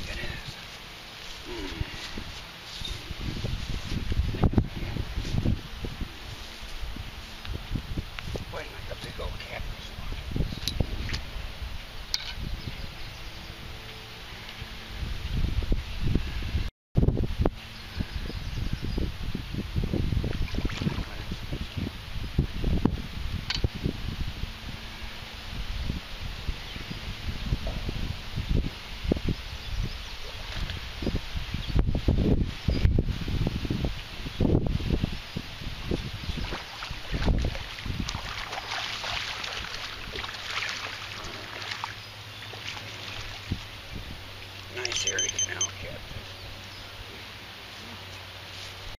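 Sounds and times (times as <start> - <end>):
wind buffeting microphone: 1.5 - 45.0
fish splashing in water: 36.4 - 43.6.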